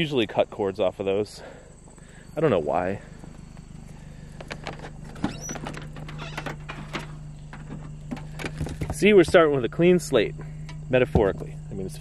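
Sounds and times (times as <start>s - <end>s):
steady low hum: 0.0s - 12.0s
footsteps on asphalt: 3.1s - 5.0s, 7.4s - 9.6s.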